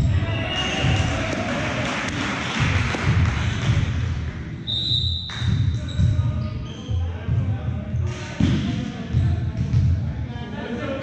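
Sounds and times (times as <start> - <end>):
crowd noise: 0.0 - 11.0
referee whistle blast: 4.7 - 5.5.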